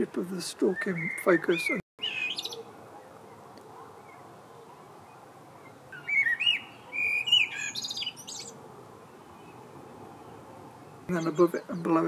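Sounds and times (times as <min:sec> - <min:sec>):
songbird whistled notes: 0:06.0 - 0:08.5.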